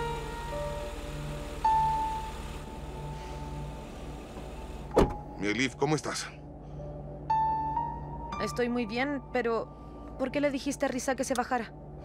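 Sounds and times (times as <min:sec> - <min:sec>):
sustained score music: 0:00.0 - 0:12.0.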